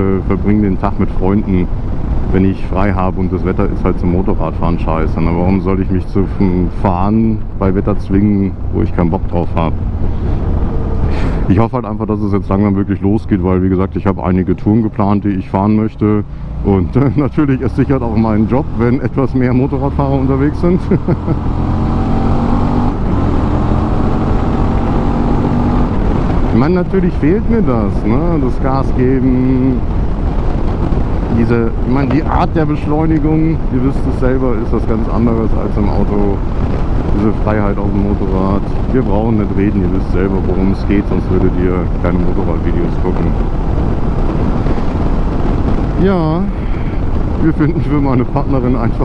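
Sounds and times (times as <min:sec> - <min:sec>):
wind and road noise: 0:00.0 - 0:49.0
motorcycle engine cruising: 0:07.4 - 0:11.6, 0:15.5 - 0:49.0.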